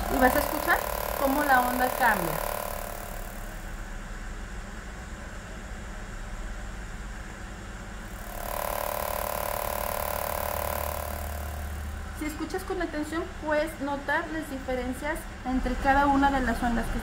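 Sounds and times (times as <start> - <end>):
machine pulsing and buzzing: 0.0 - 4.0, 8.0 - 13.8.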